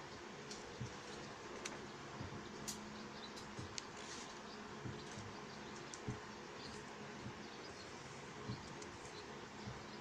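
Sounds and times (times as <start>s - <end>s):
faint hum and hiss: 0.0s - 10.0s.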